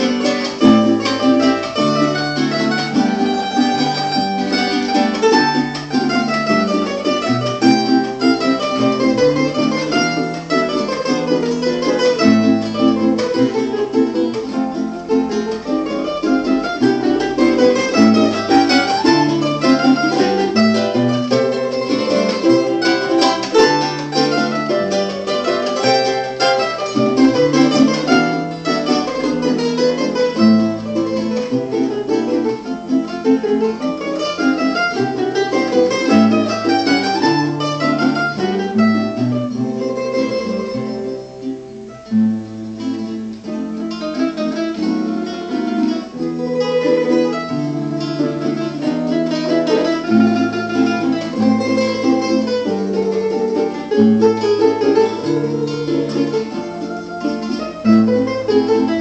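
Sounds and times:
classical guitar: 0.0 - 59.0
mandolin-like instrument: 0.0 - 59.0
third stringed instrument: 0.0 - 59.0.

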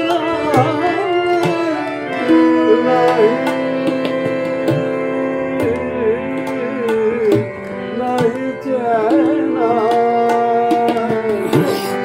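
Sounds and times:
harmonium melody: 0.0 - 12.0
sarangi melody: 0.0 - 12.0
tabla strokes: 9.2 - 12.0.

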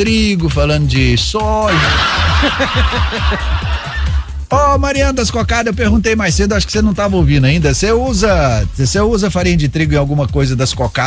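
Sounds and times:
background music with low bass: 0.0 - 11.0
person laughing: 1.7 - 4.3.

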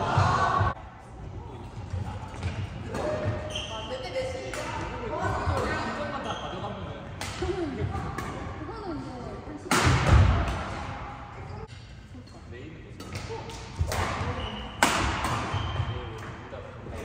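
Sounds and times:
rackets hitting shuttlecock: 9.6 - 11.0, 13.0 - 16.4.

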